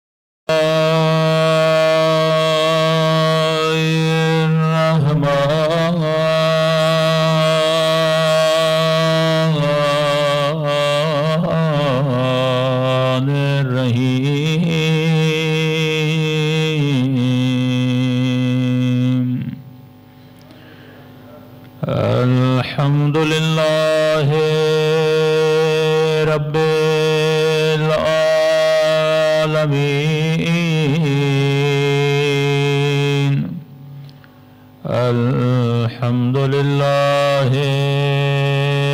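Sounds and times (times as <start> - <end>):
man chanting: 0.5 - 19.7, 21.2 - 33.7, 34.8 - 38.9.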